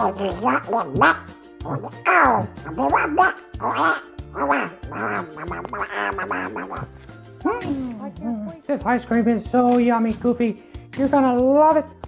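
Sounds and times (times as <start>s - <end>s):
person talking in duck voice: 0.0s - 10.1s
background music with bass line: 0.0s - 12.0s.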